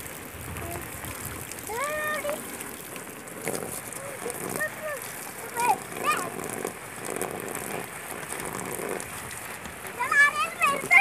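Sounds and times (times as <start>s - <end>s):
water splashing on plastic sheeting: 0.0s - 11.0s.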